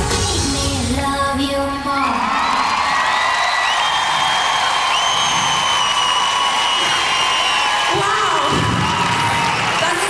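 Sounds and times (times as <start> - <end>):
crowd cheering and screaming: 1.7 - 10.0
long high whistles: 3.5 - 7.9.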